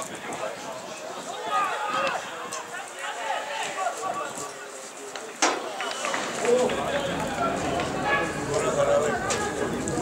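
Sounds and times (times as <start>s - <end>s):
voices shouting outdoors: 0.1s - 10.0s.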